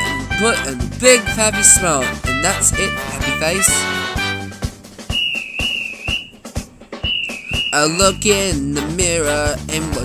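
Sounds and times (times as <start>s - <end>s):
marching drum beat: 0.7s - 9.6s
whistle blast: 5.1s - 6.4s, 7.0s - 8.0s.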